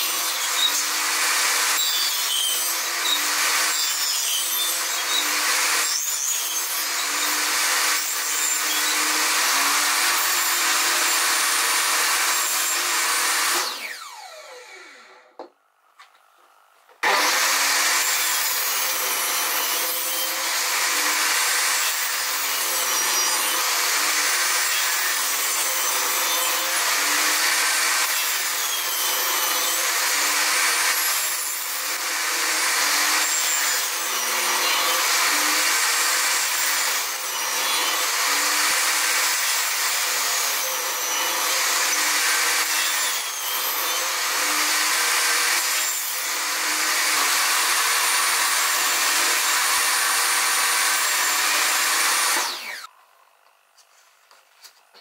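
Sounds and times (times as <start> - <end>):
table saw cutting wood: 0.0 - 15.5, 16.9 - 53.0.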